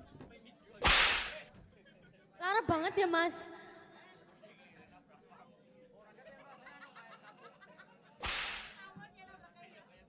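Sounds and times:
sharp loud crack: 0:00.8 - 0:01.4, 0:08.2 - 0:08.8.

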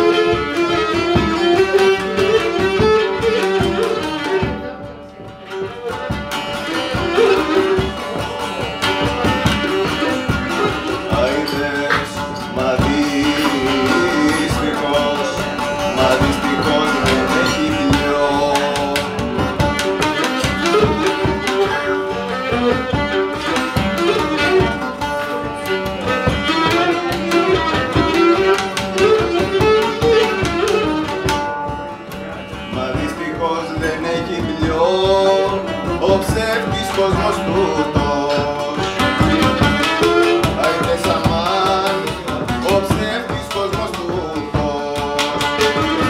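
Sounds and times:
bowed string melody: 0:00.0 - 0:46.0
drum strokes: 0:00.0 - 0:46.0
person singing: 0:00.0 - 0:46.0
strummed lute: 0:00.0 - 0:46.0.

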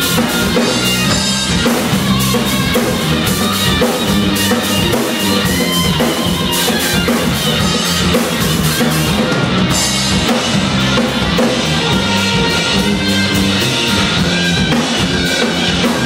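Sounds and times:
drum kit cymbals: 0:00.0 - 0:16.0
electric guitar: 0:00.0 - 0:16.0
rock band playing live: 0:00.0 - 0:16.0.

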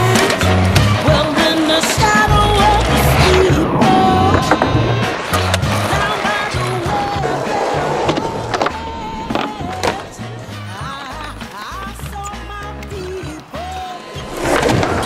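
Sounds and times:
skateboard clacks: 0:00.0 - 0:15.0
skateboard wheels rolling: 0:00.0 - 0:15.0.

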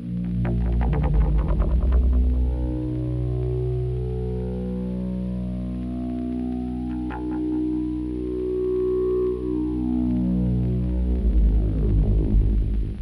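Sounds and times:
synthesizer drone: 0:00.0 - 0:13.0.

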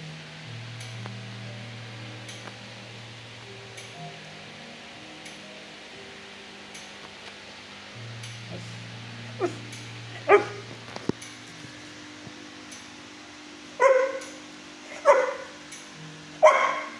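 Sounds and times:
dog barking: 0:09.4 - 0:09.6, 0:10.2 - 0:10.7, 0:13.8 - 0:15.6, 0:16.4 - 0:16.9
dog yelping: 0:09.4 - 0:10.7, 0:13.8 - 0:14.2, 0:14.9 - 0:15.6, 0:16.4 - 0:16.9.

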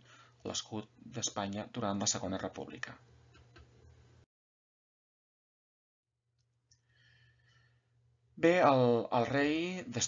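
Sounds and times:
man breathing in: 0:00.0 - 0:00.4, 0:06.8 - 0:08.0.

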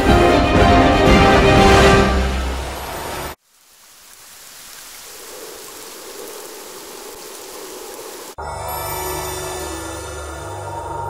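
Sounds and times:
music: 0:00.0 - 0:03.4, 0:08.4 - 0:11.0
steady rain: 0:00.0 - 0:08.4.

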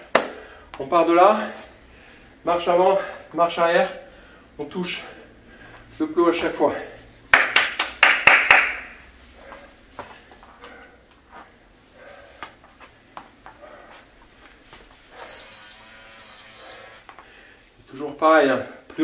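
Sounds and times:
short high electronic beeps: 0:15.2 - 0:17.0.

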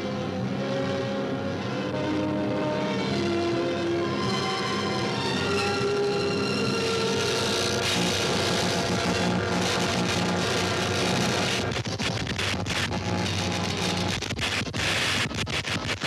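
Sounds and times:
dramatic orchestral score: 0:00.0 - 0:07.6
harsh noisy sound effect: 0:06.6 - 0:16.0
rapid irregular crackling: 0:06.9 - 0:16.0.

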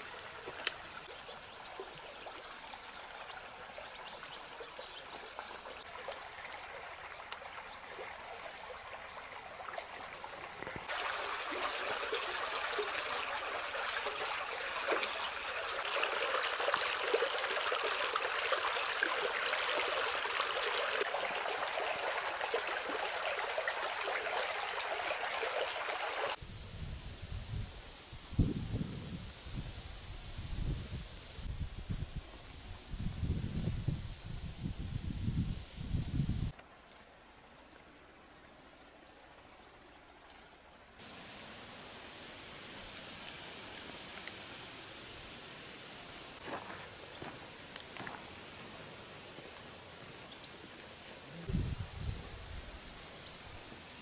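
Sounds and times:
stream water over rocks: 0:00.0 - 0:26.4, 0:38.9 - 0:51.6.

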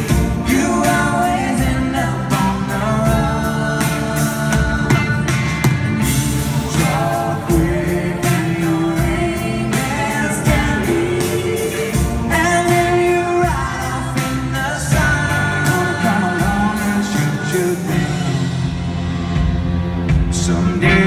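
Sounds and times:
person singing: 0:00.0 - 0:05.4, 0:06.5 - 0:18.8, 0:20.2 - 0:21.0
electric guitar: 0:00.0 - 0:21.0
steady drum beat: 0:00.0 - 0:21.0.

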